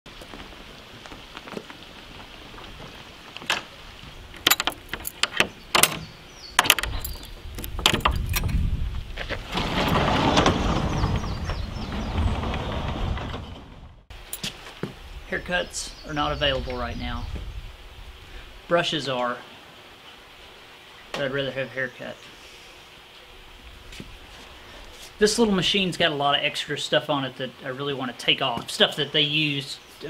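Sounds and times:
padlock clicks and knocks: 0:04.4 - 0:08.6
wooden door scraping open: 0:04.4 - 0:14.1.

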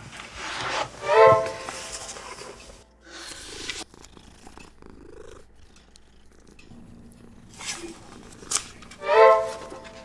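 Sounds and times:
cat purring call: 0:03.7 - 0:08.9.

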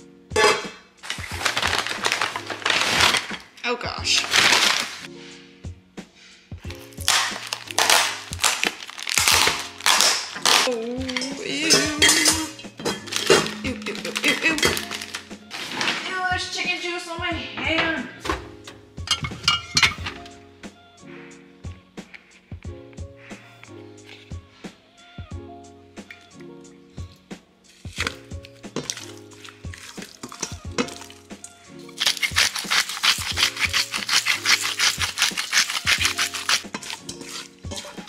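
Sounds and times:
background music: 0:00.0 - 0:38.0
jars and bottles clinking: 0:00.3 - 0:03.4, 0:06.9 - 0:16.1, 0:18.3 - 0:20.3, 0:27.9 - 0:31.3, 0:31.9 - 0:38.0
paper bag rustling: 0:01.0 - 0:05.1, 0:06.8 - 0:11.8, 0:12.9 - 0:16.2, 0:31.9 - 0:38.0
plastic package crinkling: 0:01.0 - 0:05.1, 0:06.7 - 0:11.3, 0:13.0 - 0:16.1, 0:31.9 - 0:38.0.

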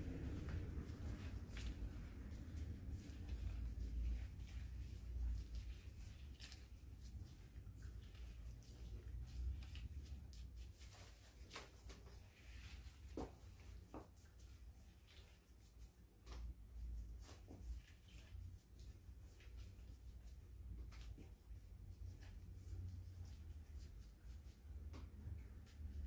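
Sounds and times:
low rumble: 0:00.0 - 0:05.4
soft brushing through hair: 0:00.0 - 0:26.0.

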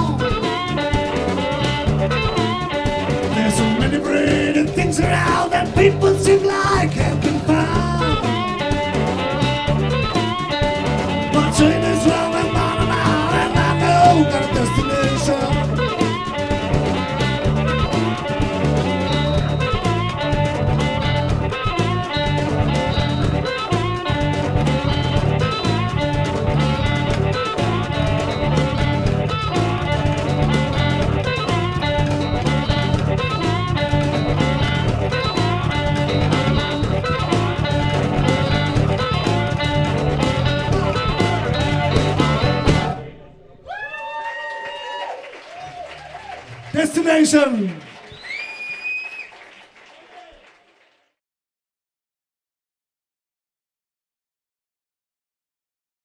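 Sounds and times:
electric bass: 0:00.0 - 0:43.7
guitar: 0:00.0 - 0:45.1
drums: 0:00.0 - 0:49.4.

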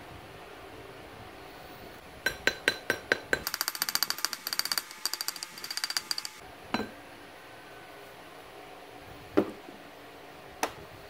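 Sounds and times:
pipe tapping metal plate: 0:02.3 - 0:06.9.

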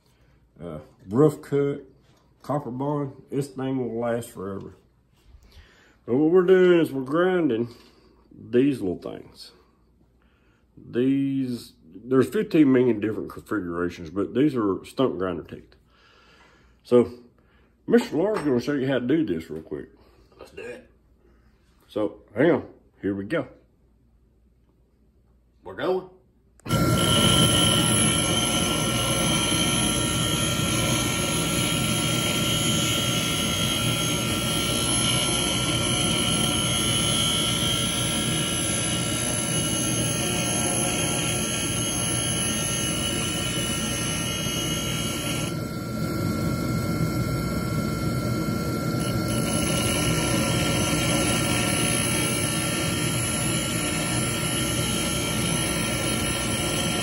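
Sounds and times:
grinder grinding metal: 0:26.7 - 0:57.0.

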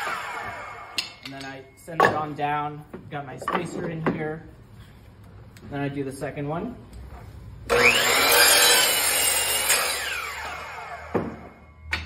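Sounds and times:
miter saw cutting wood: 0:00.0 - 0:01.0, 0:07.7 - 0:11.5
saw blade whine spinning down: 0:07.7 - 0:11.7.

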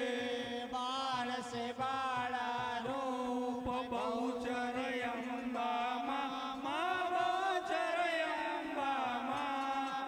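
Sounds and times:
music: 0:00.0 - 0:10.0
person singing devotional chant: 0:00.0 - 0:10.0.

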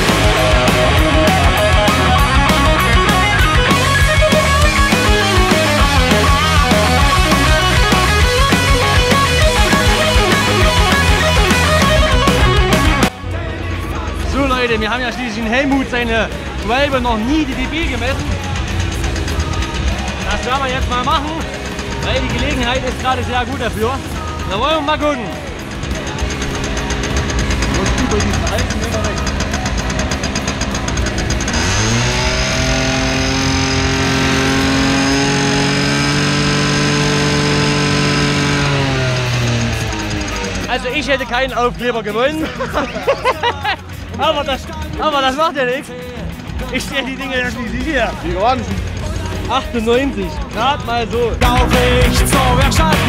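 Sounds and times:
live rock band with electric guitars: 0:00.0 - 0:14.4, 0:15.7 - 0:41.5, 0:42.1 - 0:53.0
moped engine revving: 0:00.0 - 0:53.0.

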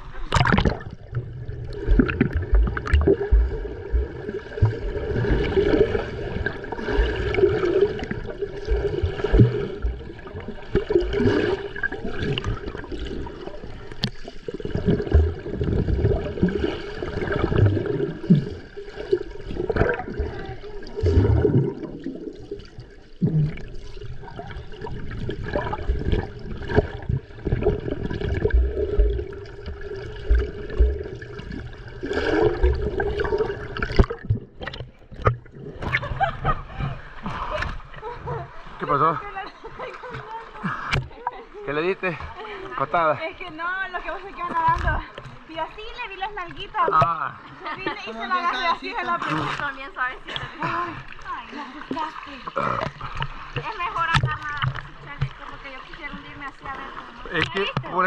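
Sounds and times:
muffled underwater sloshing: 0:00.0 - 0:58.0
low thumps: 0:00.4 - 0:05.0, 0:25.9 - 0:31.6.

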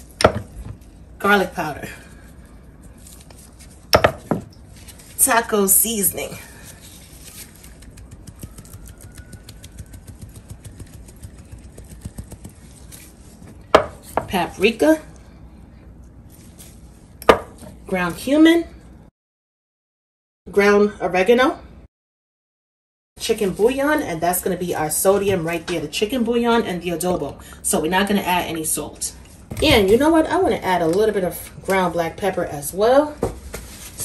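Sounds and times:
spices sprinkled on chicken: 0:07.2 - 0:13.4.

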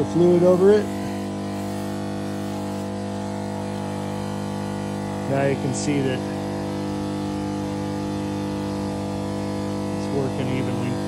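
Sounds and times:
pump electric hum: 0:00.0 - 0:11.0.

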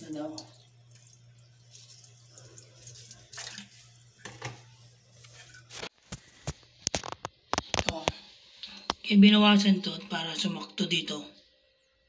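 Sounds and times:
water dripping and sloshing: 0:00.0 - 0:04.6
low steady hum: 0:00.0 - 0:06.8.

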